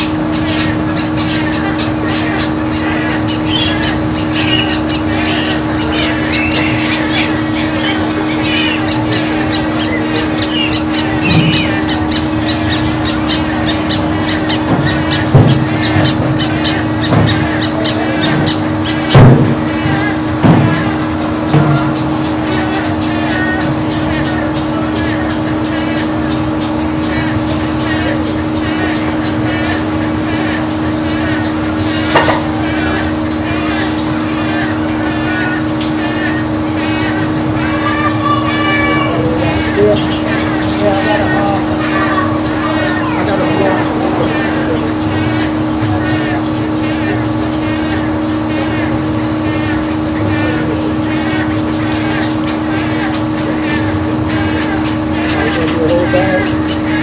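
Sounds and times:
birds chirping and calling: 0.0 - 57.0
steady low hum: 0.0 - 57.0
sharp knocks: 14.6 - 22.1, 32.1 - 32.7.

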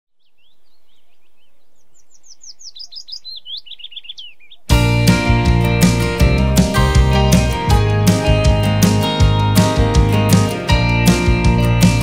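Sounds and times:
songbirds chirping and singing: 0.2 - 6.0.

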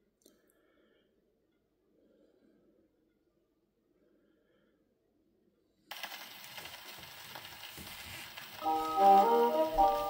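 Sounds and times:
record crackle and hiss: 5.9 - 10.0.

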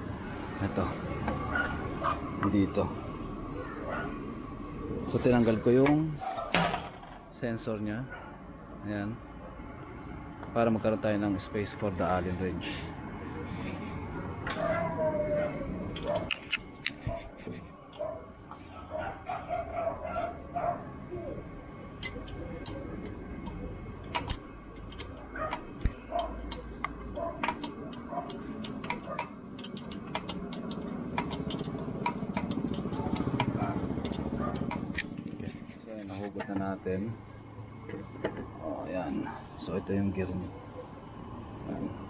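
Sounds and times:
wrench clicking on metal: 27.4 - 35.1.

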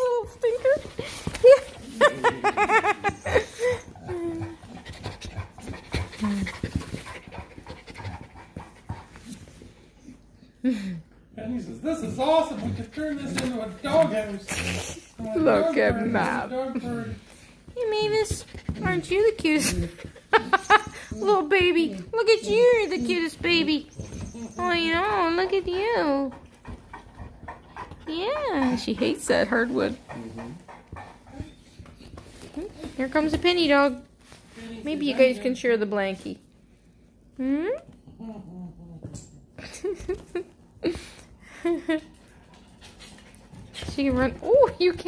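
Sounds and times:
dog panting: 0.0 - 10.4, 11.8 - 33.9, 40.8 - 45.0
dog whining: 2.9 - 4.8, 20.4 - 25.4, 30.5 - 31.8.

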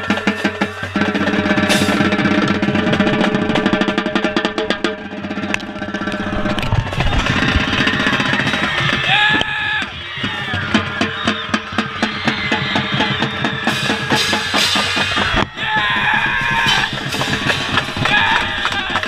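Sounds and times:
marching band horns: 0.0 - 3.5
crowd cheering: 0.0 - 3.6, 4.6 - 19.0
tenor drums rapid sticking: 0.0 - 19.0.

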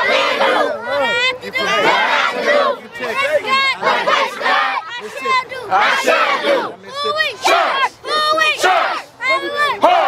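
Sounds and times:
children shouting a chant: 0.0 - 10.0.

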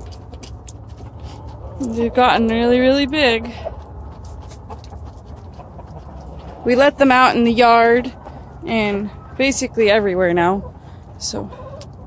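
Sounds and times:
chickens clucking: 0.0 - 12.0
steady low rumble: 0.0 - 12.0.

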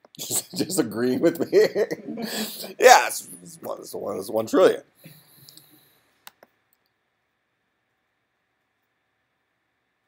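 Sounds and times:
computer mouse clicks: 5.5 - 7.0.

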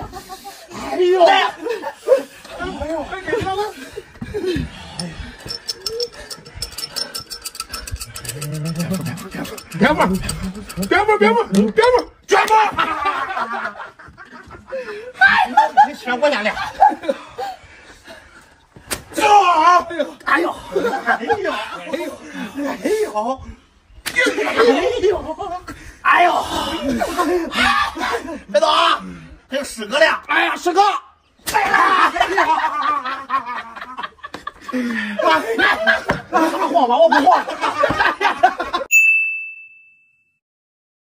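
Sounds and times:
men chuckling and laughing: 0.0 - 11.6, 12.5 - 18.7, 19.9 - 23.4, 24.1 - 28.5, 31.5 - 38.9
electronic chime ding: 38.9 - 40.3.

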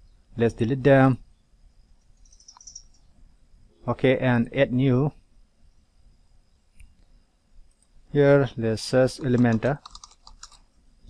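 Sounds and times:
person speaking: 8.1 - 10.1
computer mouse click: 9.2 - 10.6.

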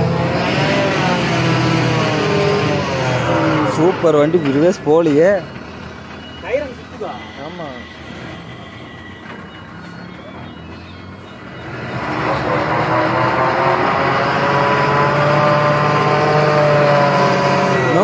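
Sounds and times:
diesel lorry engine revving: 0.0 - 18.0.

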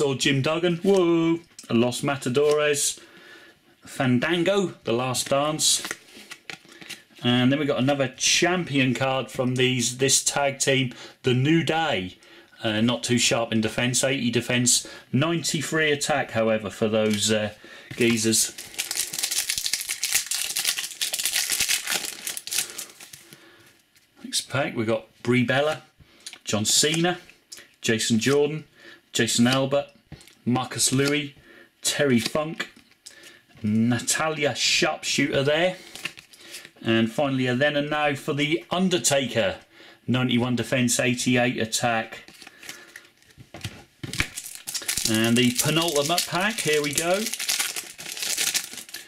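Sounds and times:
foil pack crinkling: 18.0 - 23.4, 44.1 - 49.0.

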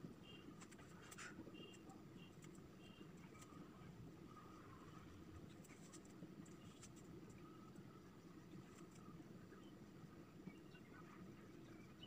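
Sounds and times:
low room hum: 0.0 - 12.0
marker pen on whiteboard: 0.2 - 7.4.

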